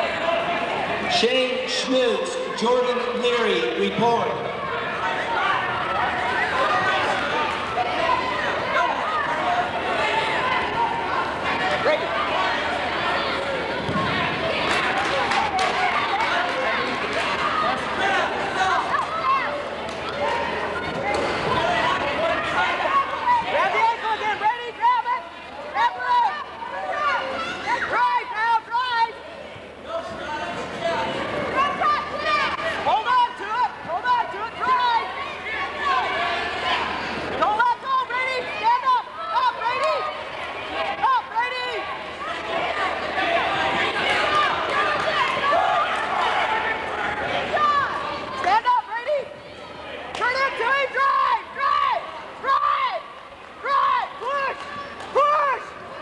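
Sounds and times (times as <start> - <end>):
crowd talking and calling out: 0.0 - 56.0.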